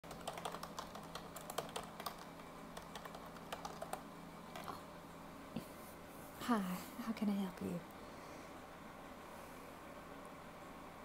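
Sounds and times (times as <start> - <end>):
keyboard typing: 0.0 - 4.8
fan hum: 0.0 - 11.0.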